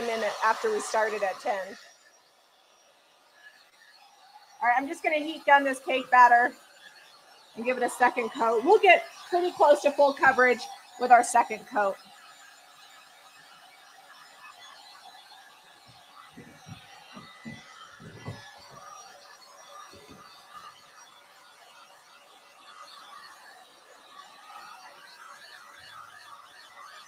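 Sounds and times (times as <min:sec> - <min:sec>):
heat gun whirring: 0:00.0 - 0:26.9.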